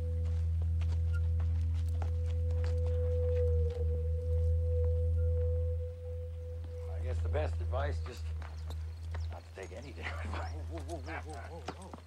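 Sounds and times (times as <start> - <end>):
sustained electric guitar drone: 0.0 - 11.8
steady low hum: 0.0 - 12.0.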